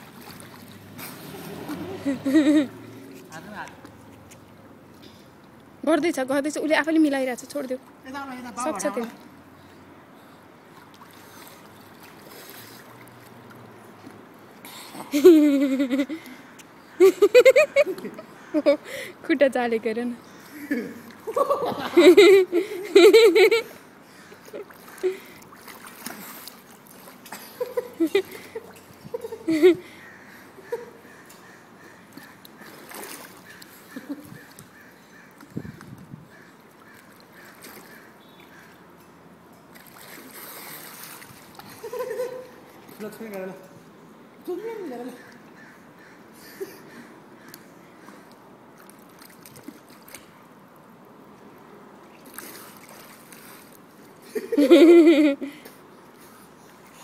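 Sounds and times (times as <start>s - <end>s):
pool water lapping and splashing: 0.0s - 57.0s.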